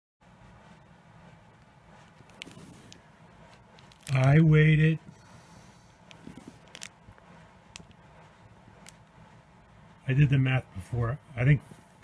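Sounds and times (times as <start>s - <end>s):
plastic bag crinkling: 2.2s - 3.0s, 3.7s - 4.4s, 6.1s - 7.0s, 7.7s - 8.0s.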